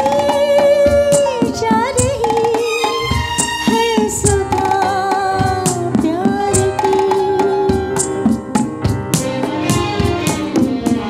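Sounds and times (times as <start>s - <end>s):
tabla and hand percussion beats: 0.0s - 11.0s.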